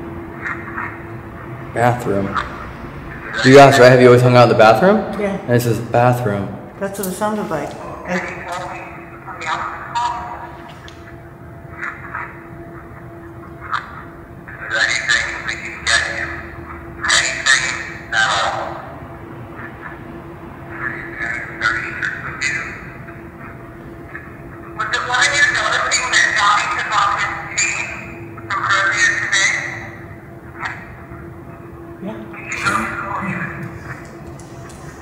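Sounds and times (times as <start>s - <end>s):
steady hum: 0.0s - 35.0s
indistinct voice sounds: 6.8s - 10.6s, 32.0s - 34.0s.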